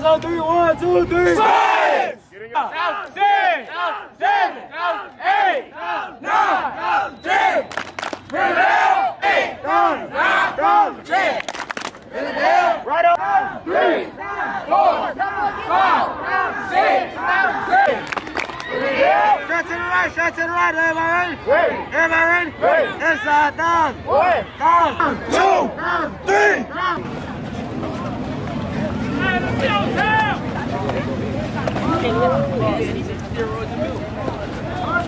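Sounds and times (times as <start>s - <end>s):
young voices shouting and chanting: 0.4s - 7.6s, 8.3s - 11.4s, 12.1s - 27.0s.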